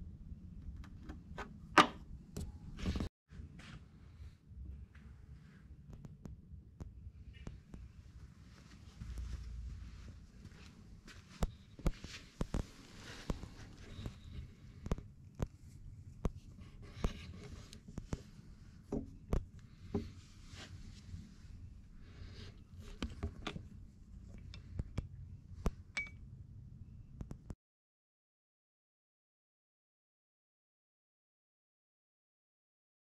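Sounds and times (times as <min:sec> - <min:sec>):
low steady hum: 0:00.0 - 0:27.5.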